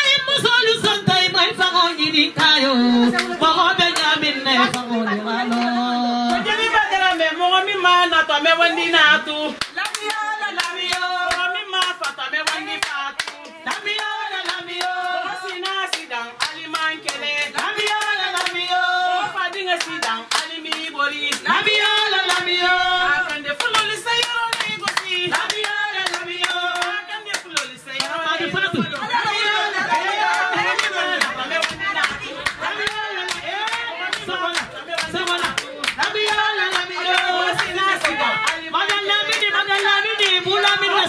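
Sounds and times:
group singing: 0.0s - 41.0s
overlapping voices: 0.0s - 41.0s
hand clapping: 3.1s - 4.9s, 9.6s - 18.8s, 19.4s - 22.6s, 23.3s - 41.0s.

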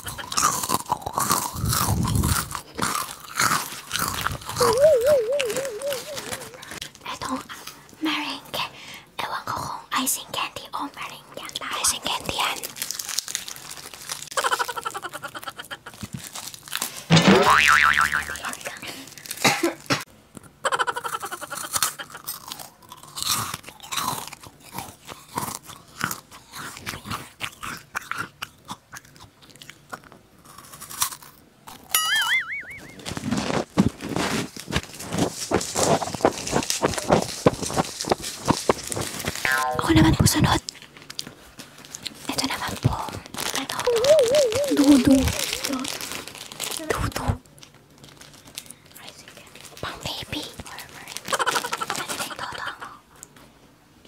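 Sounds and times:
chips crunching while chewed: 0.0s - 7.0s, 12.0s - 20.5s, 21.3s - 32.1s, 32.7s - 53.4s
wavering tone: 4.6s - 6.8s, 32.0s - 33.1s, 43.9s - 45.4s.

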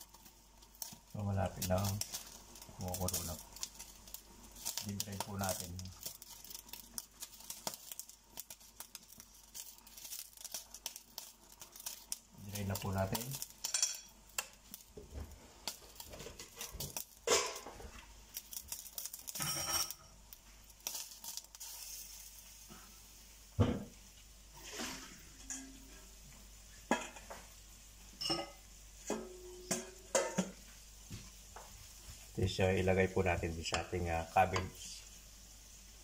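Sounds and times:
wooden spatula stirring vegetables: 0.0s - 19.5s
vegetables sizzling in frying pan: 0.0s - 36.0s
metal pot and utensils clattering: 12.8s - 14.2s, 15.7s - 18.0s, 18.9s - 20.1s, 24.6s - 26.0s, 28.2s - 30.6s.

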